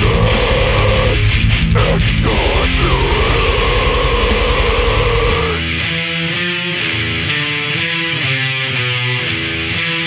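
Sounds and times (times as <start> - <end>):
distorted electric guitars and bass: 0.0 - 10.0.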